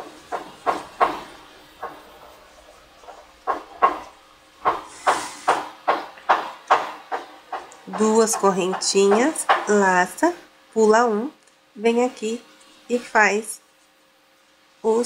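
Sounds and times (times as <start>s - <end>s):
yarn hiss: 0.0s - 13.6s.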